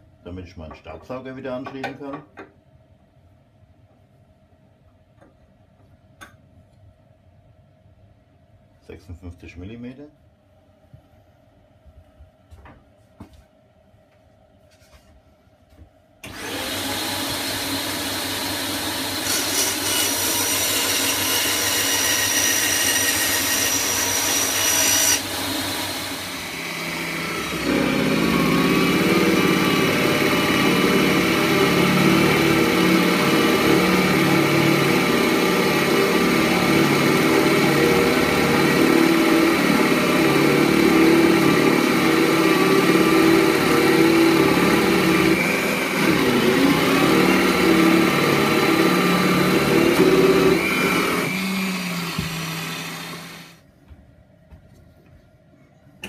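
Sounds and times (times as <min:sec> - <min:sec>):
bandsaw cutting wood: 0:16.2 - 0:53.6
drill press boring into wood: 0:16.2 - 0:53.6.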